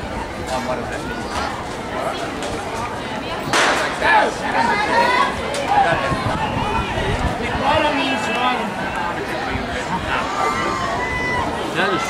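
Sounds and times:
spectators chatting: 0.0 - 12.0.

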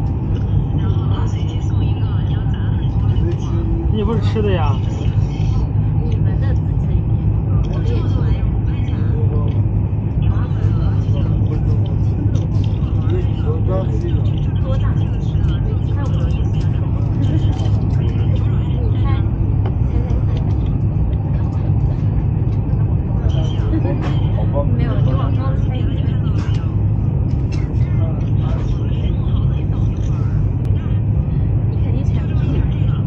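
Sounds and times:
train cabin low rumble: 0.0 - 33.0.

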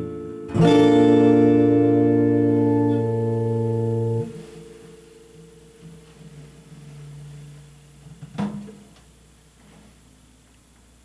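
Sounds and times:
electric guitar chord ringing: 0.0 - 8.1.

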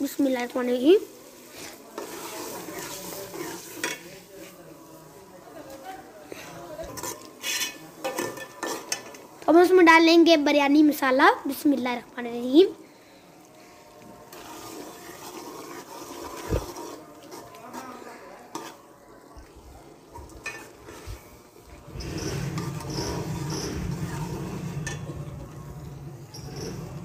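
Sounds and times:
ladle stirring in metal pot: 1.3 - 4.3, 6.9 - 9.3, 14.2 - 18.8, 20.0 - 27.0
low rumbling noise: 21.8 - 27.0.

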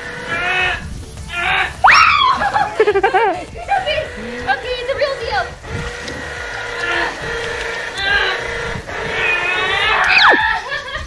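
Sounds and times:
woman laughing and straining: 2.2 - 3.9, 9.8 - 11.0.

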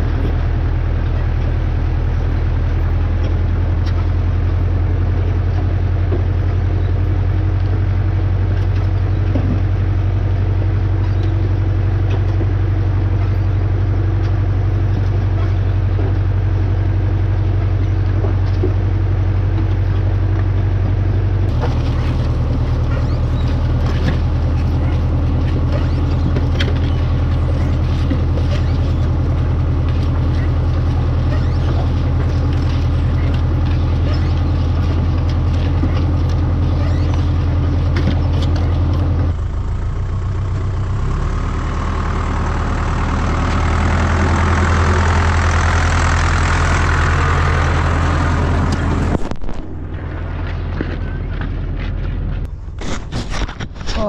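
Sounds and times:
planter clicking and rattling: 0.0 - 54.0
tractor diesel engine running: 0.0 - 54.0.

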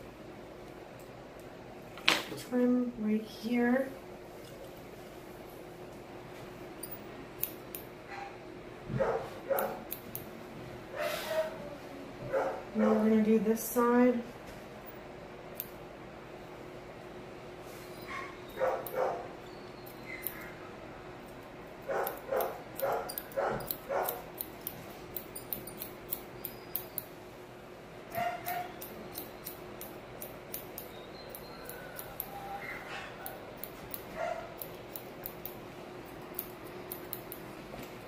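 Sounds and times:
scissors snipping: 9.5 - 10.3, 19.9 - 20.5, 21.9 - 27.1, 28.1 - 32.4, 33.2 - 38.0
small dog yipping: 28.1 - 28.8.

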